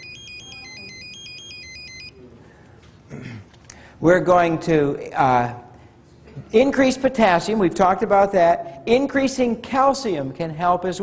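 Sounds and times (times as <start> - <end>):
phone ringtone melody: 0.0 - 2.1.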